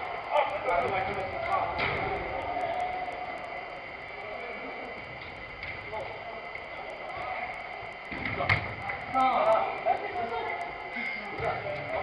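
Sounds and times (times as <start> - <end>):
high-pitched hum: 0.0 - 12.0.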